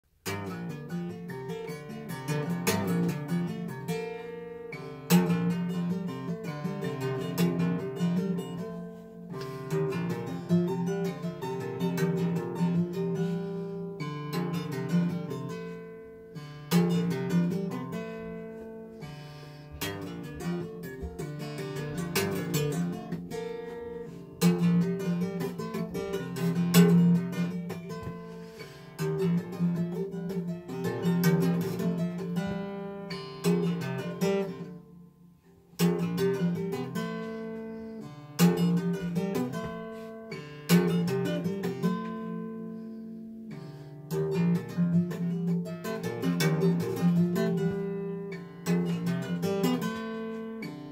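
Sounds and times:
jazz acoustic guitar chords: 0:00.1 - 0:50.9.

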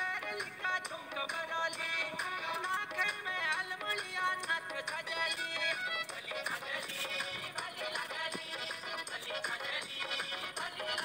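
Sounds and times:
song with sung melody and beat: 0:00.0 - 0:11.0.

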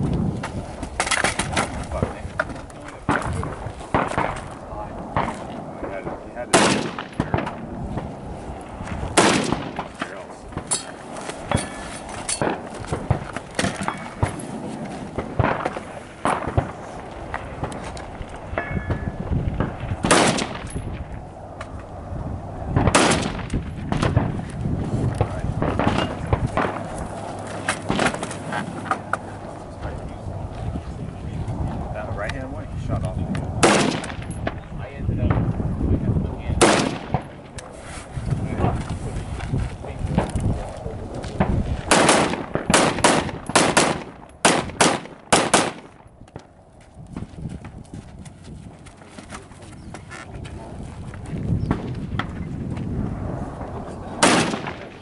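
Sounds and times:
faint gunshots: 0:05.1 - 0:08.1, 0:09.1 - 0:10.7, 0:15.1 - 0:17.8, 0:19.6 - 0:20.7, 0:22.8 - 0:24.4, 0:33.6 - 0:34.6, 0:36.6 - 0:37.5, 0:41.4 - 0:46.0, 0:54.2 - 0:55.0
loud gunshots: 0:05.2 - 0:07.6, 0:09.1 - 0:10.7, 0:19.6 - 0:20.7, 0:22.8 - 0:24.4, 0:33.6 - 0:34.3, 0:36.6 - 0:37.4, 0:41.4 - 0:46.0, 0:54.2 - 0:55.0.

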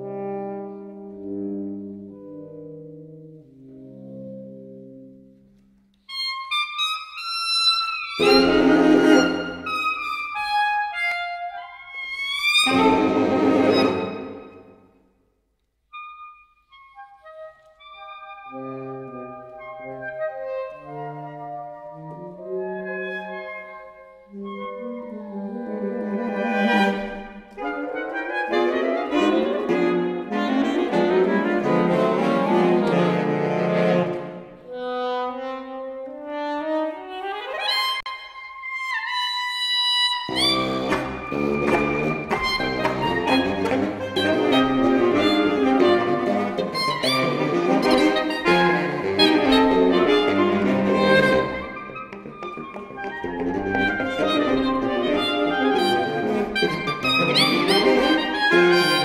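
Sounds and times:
saxophone quartet playing: 0:00.0 - 0:14.9, 0:15.9 - 0:38.1, 0:39.1 - 0:59.0.

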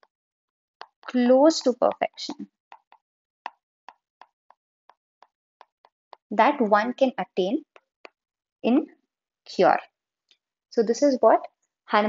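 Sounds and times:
stylus tapping on glass screen: 0:00.8 - 0:04.6.

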